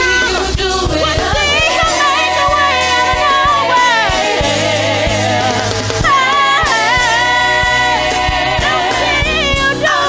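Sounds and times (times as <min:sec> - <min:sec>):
woman singing gospel: 0:00.0 - 0:10.0.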